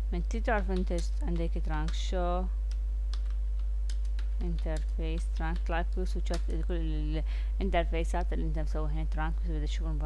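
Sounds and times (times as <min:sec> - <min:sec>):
steady low hum: 0:00.0 - 0:10.0
computer keyboard keystrokes: 0:00.6 - 0:02.0, 0:02.7 - 0:06.6.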